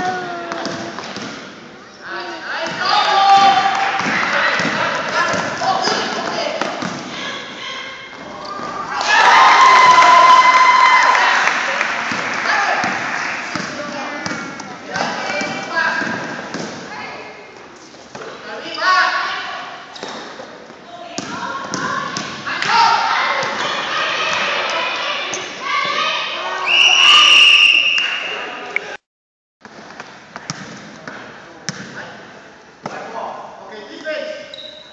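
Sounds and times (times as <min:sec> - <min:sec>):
people shouting: 0:07.1 - 0:11.5
referee's whistle: 0:26.6 - 0:28.5, 0:34.5 - 0:34.9.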